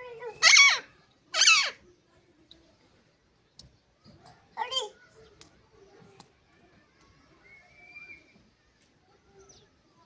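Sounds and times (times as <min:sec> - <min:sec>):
parakeet squawk: 0:00.4 - 0:01.8.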